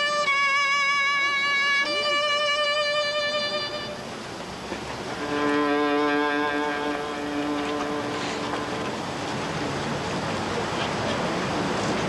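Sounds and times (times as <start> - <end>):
violin playing long low note: 0.0 - 4.3, 5.1 - 9.3
outdoor background noise: 0.0 - 12.0.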